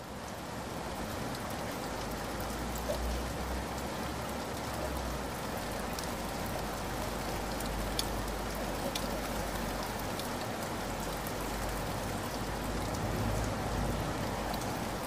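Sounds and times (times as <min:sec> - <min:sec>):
steady rain hiss: 0:00.0 - 0:15.0
faint raindrop ticks: 0:01.2 - 0:15.0.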